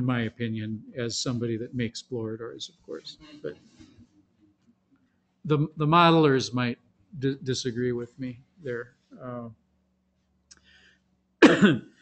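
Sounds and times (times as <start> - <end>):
man clearing his throat: 11.4 - 11.9.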